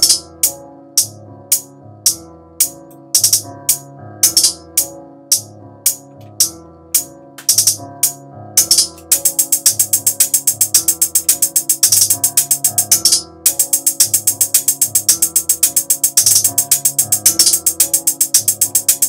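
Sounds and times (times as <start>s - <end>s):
trap hi-hat pattern: 0.0s - 19.0s.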